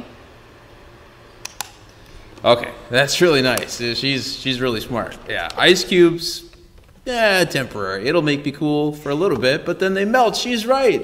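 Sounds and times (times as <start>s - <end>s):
electric fan whirring: 0.0s - 11.0s
quick clicks: 1.4s - 2.5s.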